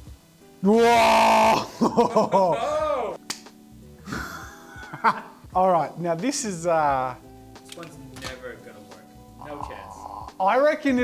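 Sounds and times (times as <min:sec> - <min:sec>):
quiet background music: 0:00.0 - 0:11.0
man laughing: 0:01.4 - 0:03.1, 0:04.1 - 0:05.3.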